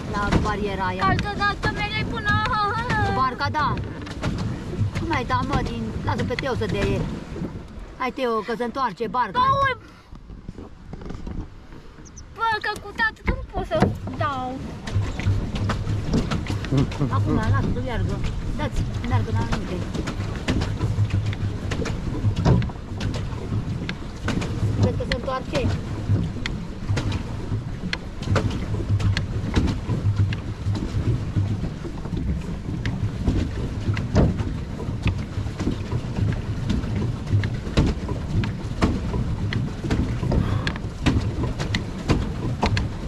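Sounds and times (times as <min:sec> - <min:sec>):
paddle wheel churning water: 0:00.0 - 0:43.0
pedal drive knocking and clicking: 0:00.2 - 0:07.0, 0:09.4 - 0:43.0
wind on microphone: 0:09.4 - 0:43.0.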